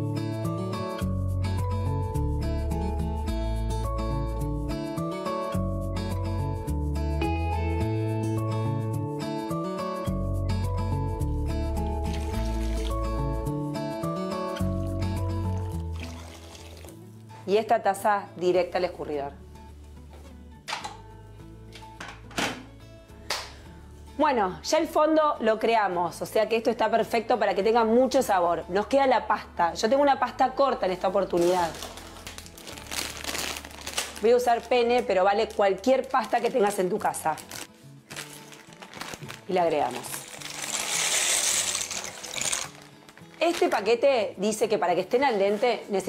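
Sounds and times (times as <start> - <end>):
soft background music: 0.0 - 46.0
dry pasta rattling into a pot: 39.2 - 43.8.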